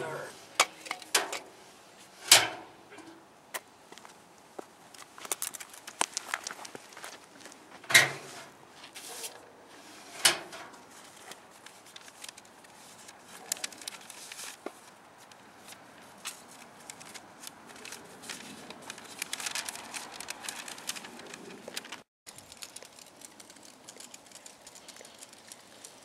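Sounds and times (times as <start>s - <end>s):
paper rustling: 10.9s - 24.2s
small clicks: 19.2s - 26.0s.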